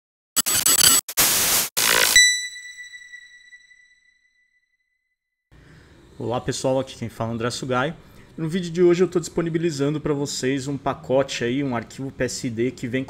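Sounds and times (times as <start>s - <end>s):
loud noise bursts: 0.4s - 2.3s
high ringing tone: 1.8s - 4.6s.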